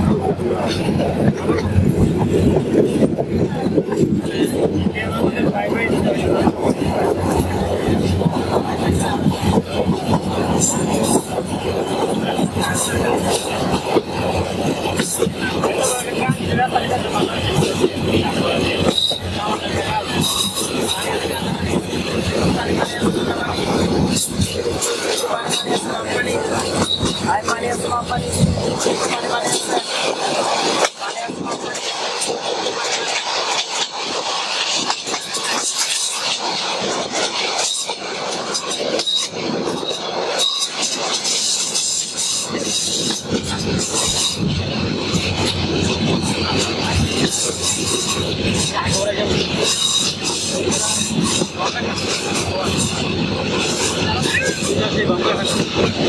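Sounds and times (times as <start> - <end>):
train rumbling on track: 0.0 - 56.0.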